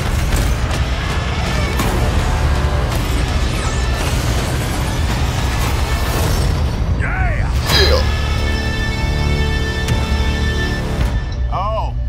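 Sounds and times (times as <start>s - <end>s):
cry-like tone: 7.7s - 8.2s.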